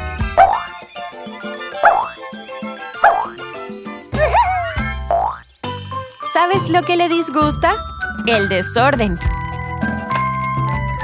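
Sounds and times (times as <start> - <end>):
cheerful children's music: 0.0 - 11.0
cartoon boing sound effects: 5.1 - 5.4.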